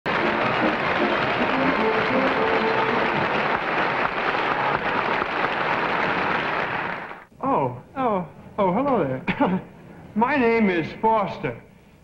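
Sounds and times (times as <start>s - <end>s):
band music: 0.1s - 3.6s
audience applauding: 0.1s - 7.3s.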